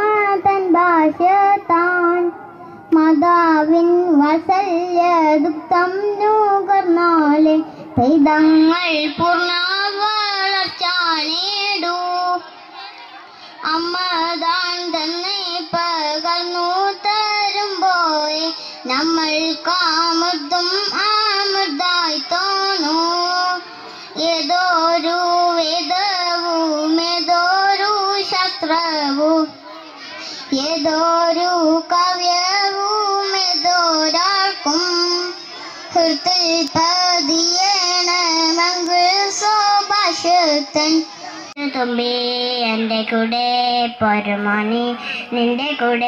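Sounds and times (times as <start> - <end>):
girl singing into microphone: 0.0 - 46.0.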